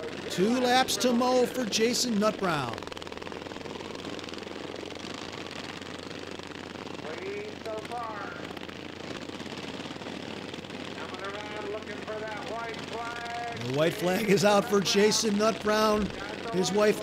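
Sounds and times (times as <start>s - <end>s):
racing lawn mower engines: 0.0s - 3.3s, 10.9s - 17.0s
faint voice: 13.5s - 14.8s.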